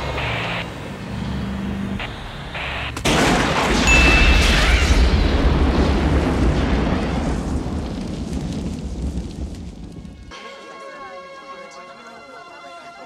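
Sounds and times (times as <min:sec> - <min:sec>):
fire burning: 0:00.0 - 0:10.3
deep rumble of large explosion: 0:03.1 - 0:10.3.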